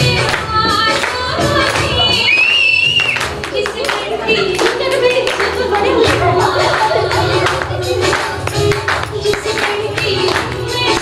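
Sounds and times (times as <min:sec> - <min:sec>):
hands clapping: 0:00.1 - 0:11.0.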